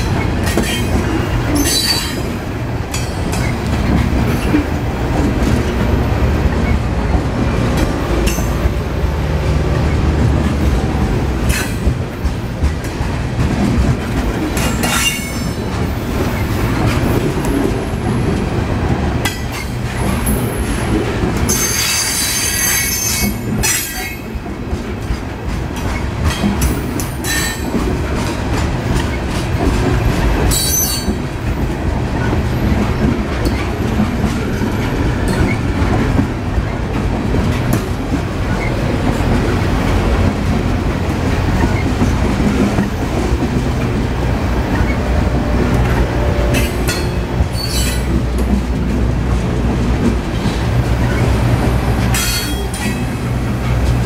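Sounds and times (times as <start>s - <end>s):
freight train wheels clattering: 0.0s - 54.0s.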